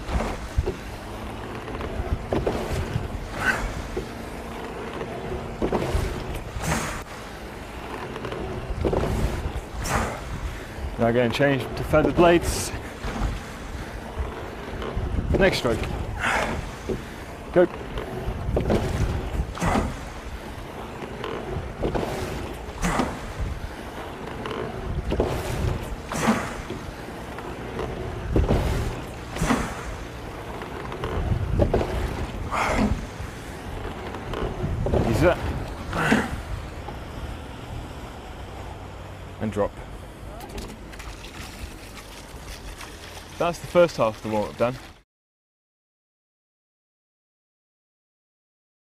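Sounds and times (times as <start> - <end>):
oar blades splashing: 0.0 - 37.3, 40.4 - 45.0
wind rumbling on microphone: 0.0 - 45.0.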